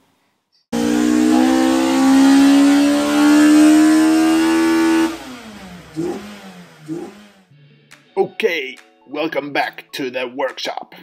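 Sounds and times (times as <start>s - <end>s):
car engine revving: 0.8s - 7.6s.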